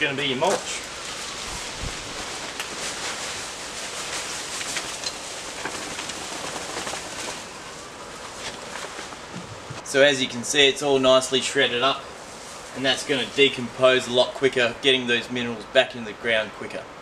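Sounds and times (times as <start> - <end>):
dry leaves pouring out: 0.0 - 9.3.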